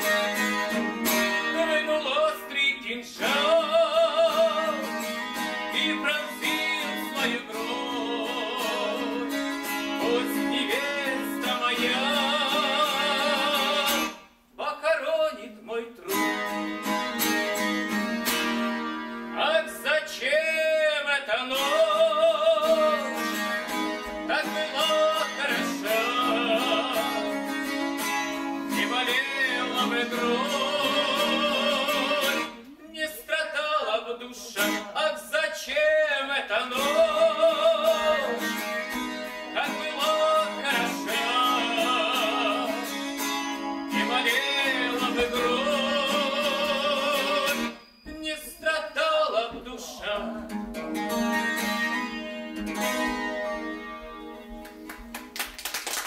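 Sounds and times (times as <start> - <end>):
acoustic guitar strumming: 0.0 - 15.2, 16.0 - 55.4
man singing: 0.0 - 17.0, 19.2 - 54.4.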